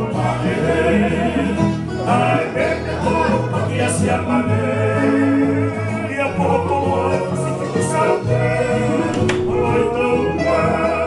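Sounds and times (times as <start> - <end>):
men singing in harmony: 0.0 - 11.0.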